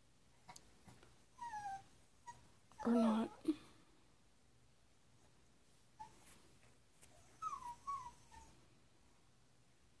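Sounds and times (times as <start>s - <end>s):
puppy whining and whimpering: 1.3s - 3.5s, 6.0s - 6.3s, 7.1s - 8.7s.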